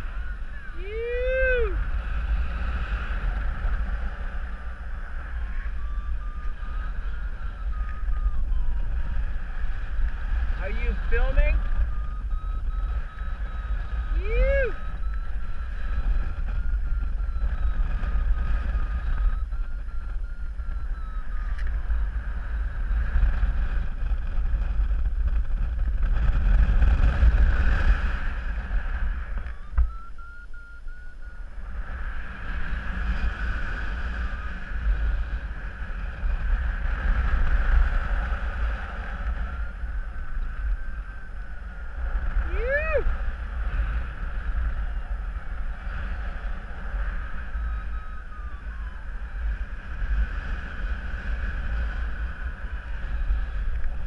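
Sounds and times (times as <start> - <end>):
faint wavering high tone: 0.0 - 24.5, 27.2 - 54.0
wind buffeting microphone: 0.0 - 54.0.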